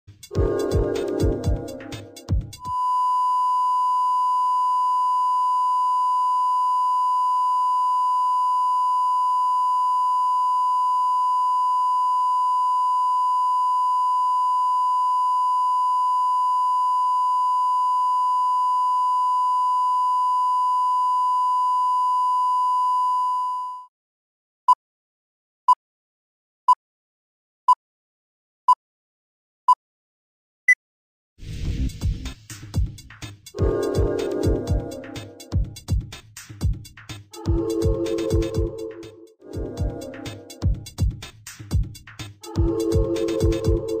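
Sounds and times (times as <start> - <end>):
intro music: 0.1 - 2.8, 31.4 - 44.0.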